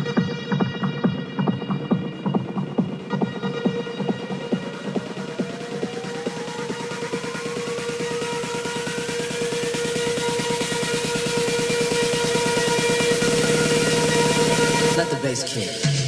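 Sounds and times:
electronic dance music build-up: 0:00.0 - 0:16.0.

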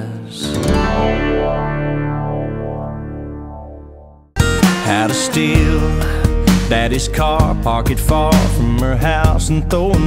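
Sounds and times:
guitar: 0:00.0 - 0:10.0
man singing low note: 0:04.8 - 0:10.0.

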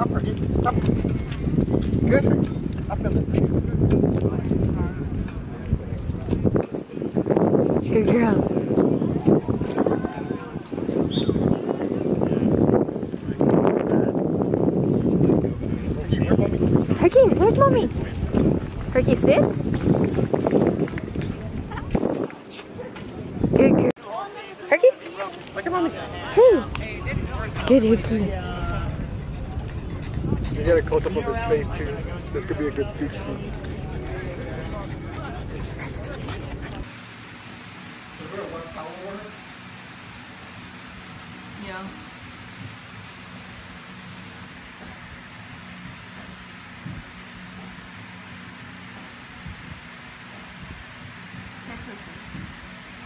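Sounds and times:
indistinct voices talking: 0:00.0 - 0:36.9.

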